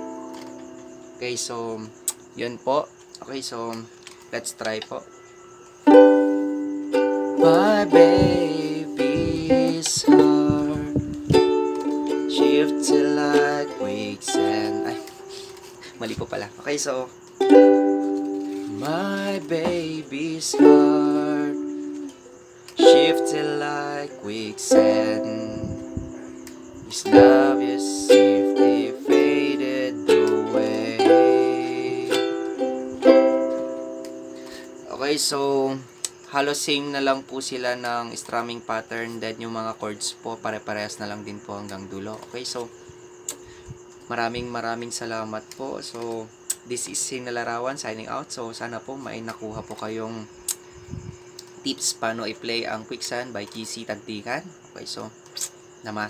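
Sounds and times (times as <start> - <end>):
ukulele strummed: 5.8 - 15.6, 17.4 - 22.1, 22.8 - 35.0.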